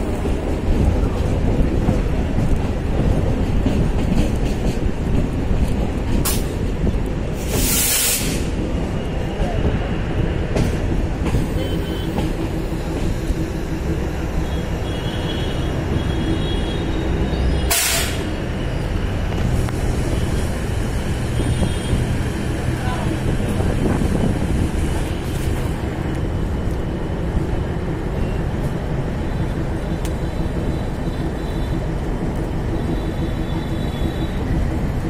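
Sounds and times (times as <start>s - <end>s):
train wheels rumbling on rail: 0.0s - 35.0s
short sharp hiss: 7.4s - 8.5s.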